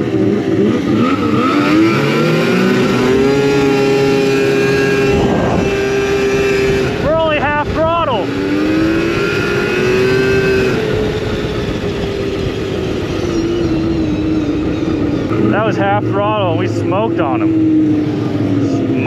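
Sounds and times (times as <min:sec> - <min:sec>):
snowmobile engine under throttle: 0:00.0 - 0:19.0.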